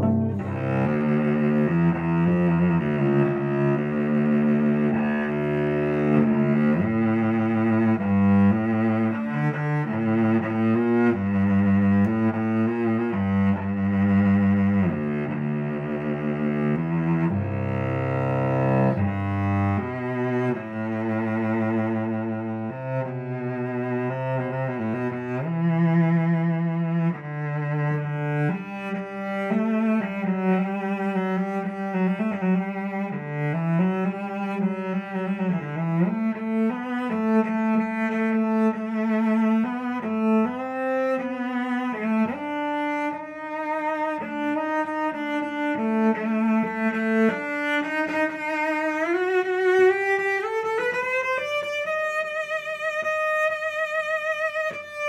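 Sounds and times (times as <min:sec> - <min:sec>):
bowed cello: 0:00.0 - 0:55.0.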